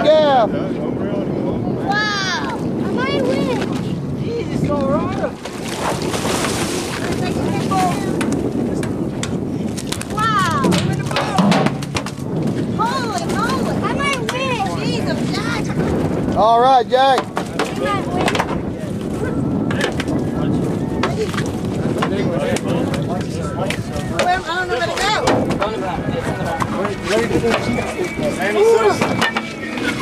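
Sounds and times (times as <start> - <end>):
fish splashing in water: 5.2 - 8.2
sharp knocks: 10.6 - 12.2.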